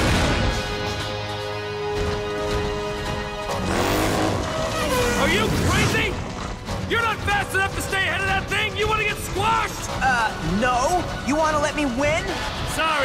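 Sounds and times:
action chase music: 0:00.0 - 0:13.0.

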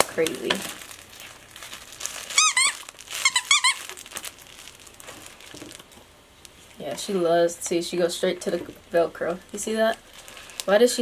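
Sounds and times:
dog toy squeaking: 0:02.3 - 0:03.9.

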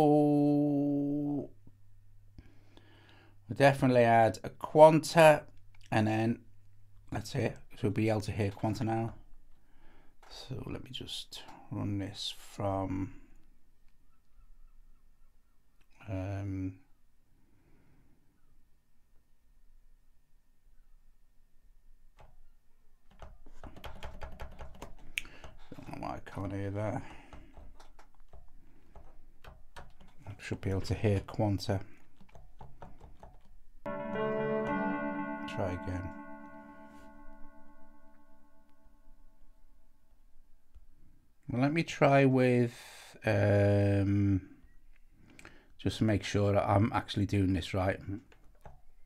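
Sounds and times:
fingers tapping touchscreen: 0:23.1 - 0:25.8
faint wavering high tone: 0:33.9 - 0:39.9
held synthesizer chord: 0:33.9 - 0:40.0.

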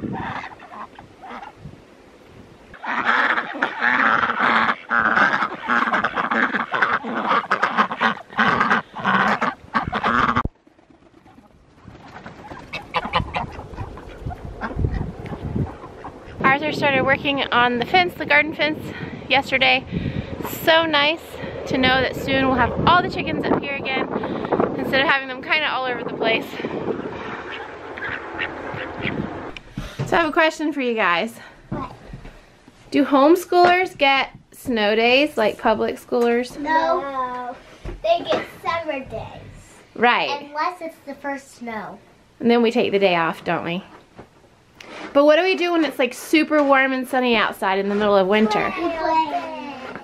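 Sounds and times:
ducks quacking: 0:00.0 - 0:01.6, 0:02.7 - 0:11.4, 0:12.0 - 0:18.8, 0:23.5 - 0:29.6.

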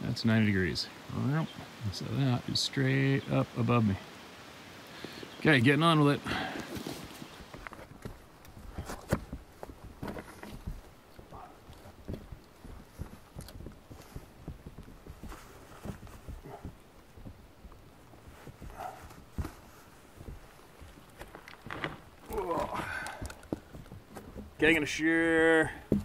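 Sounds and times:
boots stepping on rocky ground: 0:06.2 - 0:26.0.

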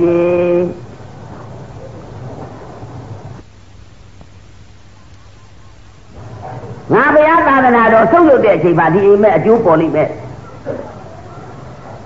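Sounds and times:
crackly low rumbling: 0:00.0 - 0:07.3
low hum and hiss: 0:00.0 - 0:12.0.

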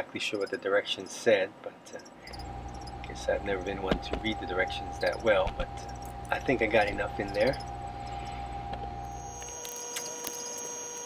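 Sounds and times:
electrical hum: 0:00.0 - 0:11.0
thin high whine: 0:02.0 - 0:11.0
deep low hum: 0:02.3 - 0:09.6.

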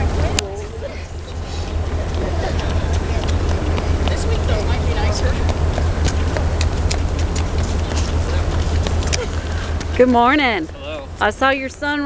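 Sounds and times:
people talking: 0:00.0 - 0:06.4, 0:07.6 - 0:12.0
footsteps on pavement: 0:00.0 - 0:12.0
low rumble: 0:00.0 - 0:12.0.

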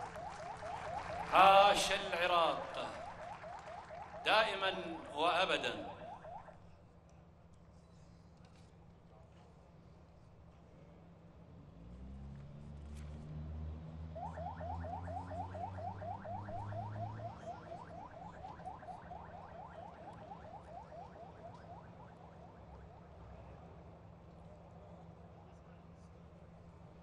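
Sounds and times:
siren yelping: 0:00.0 - 0:06.6, 0:14.1 - 0:23.2.

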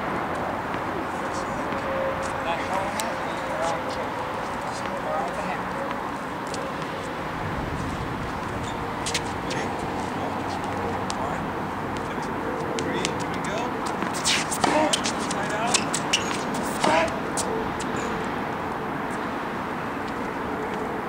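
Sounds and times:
sneakers squeaking on court: 0:08.4 - 0:11.2, 0:11.8 - 0:18.3.

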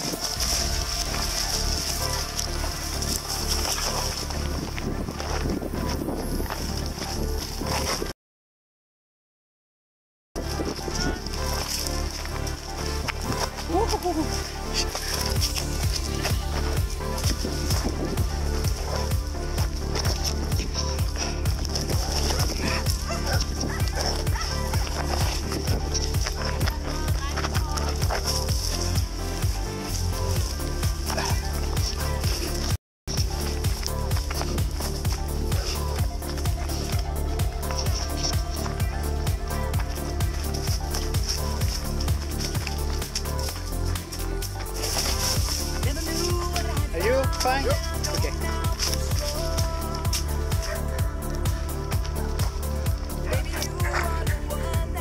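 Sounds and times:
music with deep bass: 0:00.0 - 0:08.1, 0:10.4 - 0:55.0.

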